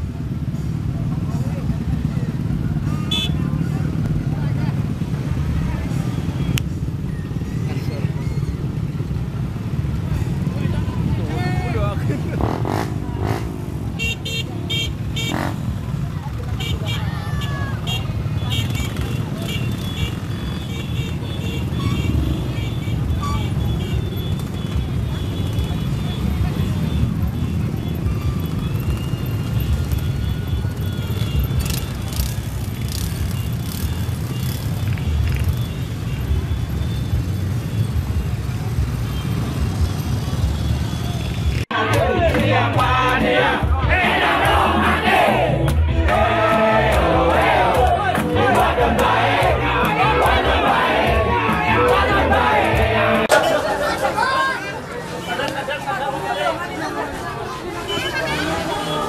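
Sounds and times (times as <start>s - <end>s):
motorcycles and scooters engine drone: 0.0s - 56.0s
voices: 0.8s - 31.3s, 41.0s - 59.0s.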